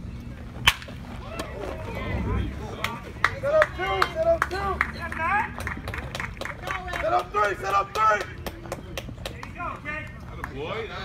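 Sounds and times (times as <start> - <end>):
baseball bat hitting ball: 0.6 - 1.6
people yelling and cheering: 1.1 - 5.8.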